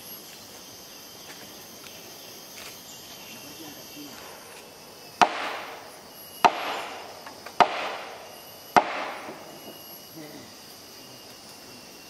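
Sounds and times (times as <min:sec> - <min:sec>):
sharp knocks with rustling: 0:05.2 - 0:05.8, 0:06.4 - 0:09.7.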